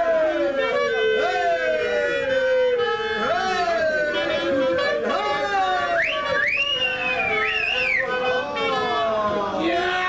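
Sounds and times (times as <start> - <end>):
chatter: 0.0 - 10.0
high whistle sliding in pitch: 6.0 - 8.1.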